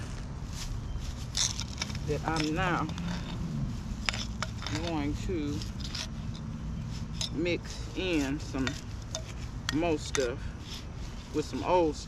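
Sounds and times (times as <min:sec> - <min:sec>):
hand trowel scraping in soil: 0:00.0 - 0:12.0.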